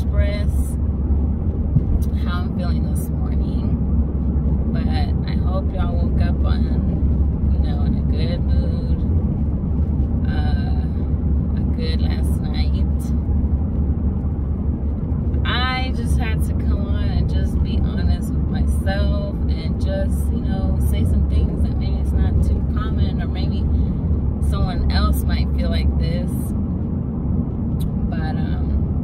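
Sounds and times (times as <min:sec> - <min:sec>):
woman speaking: 0:00.0 - 0:00.8, 0:02.0 - 0:03.8, 0:04.7 - 0:09.0, 0:10.2 - 0:11.0, 0:11.6 - 0:13.1, 0:15.4 - 0:23.7, 0:24.4 - 0:26.5, 0:28.1 - 0:28.8
car cabin rumble: 0:00.0 - 0:29.0.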